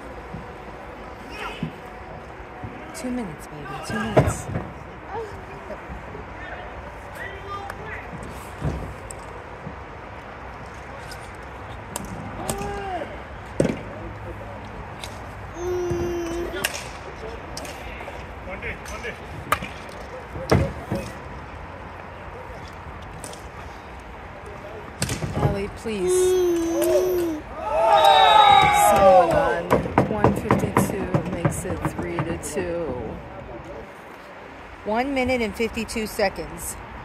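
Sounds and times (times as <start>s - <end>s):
players shouting: 12.3s - 13.3s, 25.5s - 30.0s
hockey sticks clacking: 16.2s - 21.4s, 28.7s - 33.1s.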